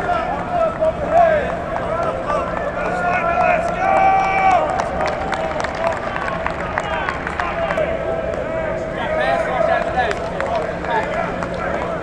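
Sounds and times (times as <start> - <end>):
men shouting and calling out: 0.0 - 5.0.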